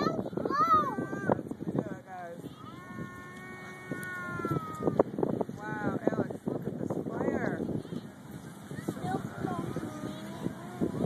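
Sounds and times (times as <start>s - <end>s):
child's high vocal sounds: 2.6s - 5.0s
child's long high call: 2.6s - 5.0s.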